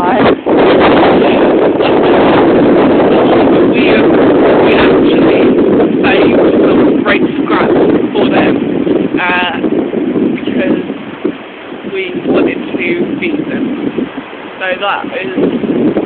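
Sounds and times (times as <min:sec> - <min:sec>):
voice: 0:00.0 - 0:00.4, 0:01.0 - 0:08.6, 0:09.2 - 0:09.7, 0:10.4 - 0:10.9, 0:11.9 - 0:13.7, 0:14.6 - 0:15.5
wind buffeting microphone: 0:00.0 - 0:16.0.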